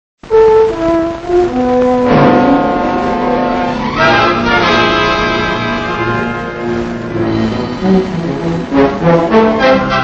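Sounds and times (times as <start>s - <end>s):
orchestral music led by brass: 0.2s - 10.0s.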